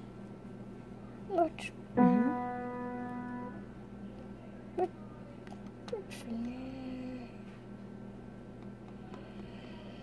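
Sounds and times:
piano note ringing: 0:02.0 - 0:03.8.

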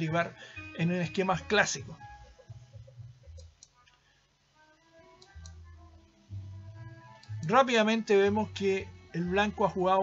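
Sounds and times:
faint background music: 0:00.0 - 0:10.0
mouse clicks: 0:03.3 - 0:04.0, 0:05.2 - 0:05.6.

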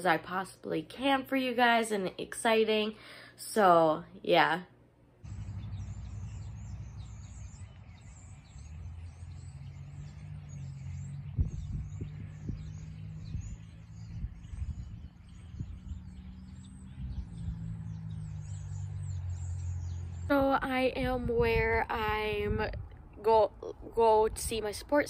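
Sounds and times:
low hum: 0:05.2 - 0:25.0
small birds chirping: 0:05.2 - 0:25.0.

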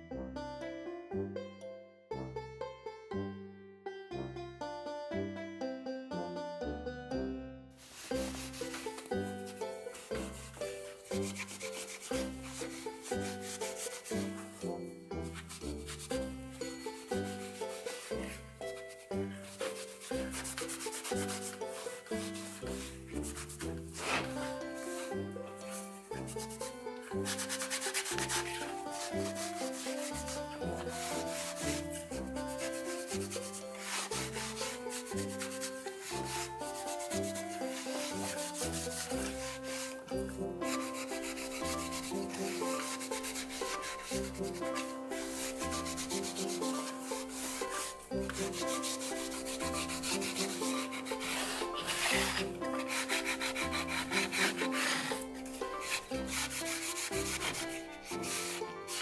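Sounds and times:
background music: 0:00.0 - 0:59.0
rag rubbing on wood: 0:07.8 - 0:59.0.

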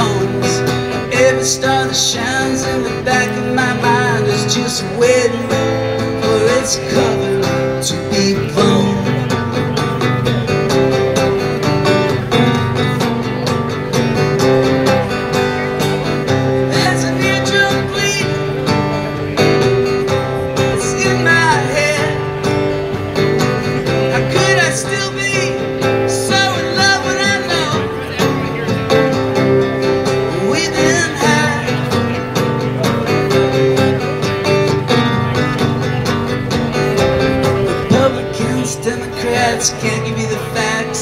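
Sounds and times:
acoustic guitar strumming: 0:00.0 - 0:41.0.

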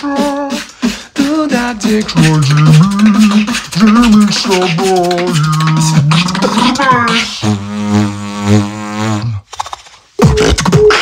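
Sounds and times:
beatboxer low vocal bass drone: 0:00.0 - 0:09.4.

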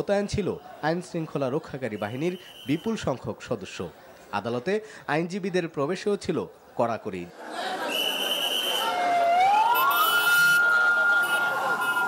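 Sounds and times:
street noise: 0:00.0 - 0:12.0
police siren wailing: 0:08.8 - 0:12.0.

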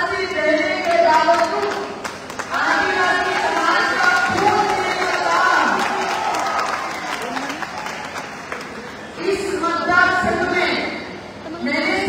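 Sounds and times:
applause: 0:00.7 - 0:09.2.

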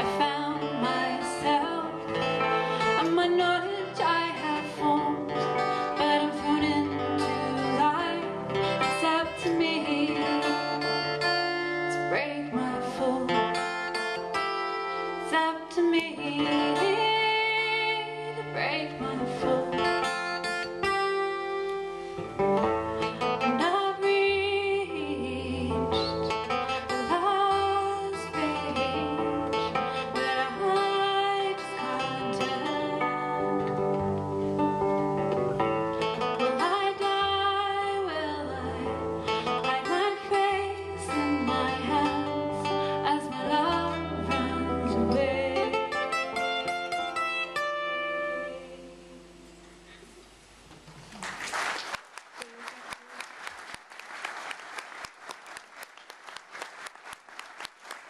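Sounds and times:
woman singing: 0:00.0 - 0:14.4, 0:15.1 - 0:21.3, 0:23.2 - 0:33.9, 0:36.2 - 0:47.2, 0:48.0 - 0:49.3
acoustic guitars playing folk song: 0:00.0 - 0:50.1
audience applause: 0:50.9 - 0:58.0.

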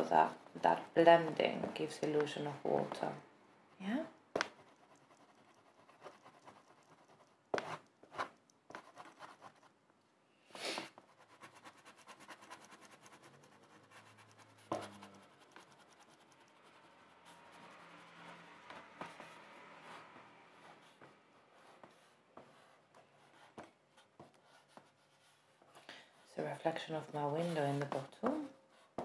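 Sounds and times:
scratchy rubbing on paper: 0:04.4 - 0:09.8, 0:10.6 - 0:25.6, 0:26.2 - 0:28.1.

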